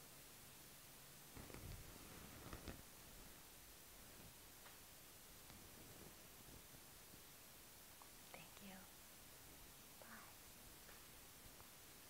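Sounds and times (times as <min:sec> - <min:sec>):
woman whispering: 0:08.3 - 0:08.9, 0:10.0 - 0:10.4.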